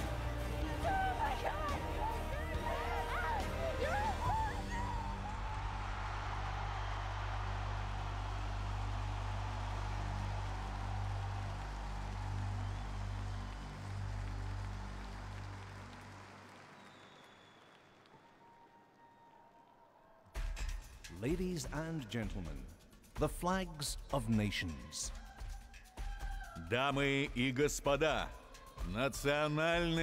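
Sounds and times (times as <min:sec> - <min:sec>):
crowd cheering and applause: 0:00.0 - 0:19.8.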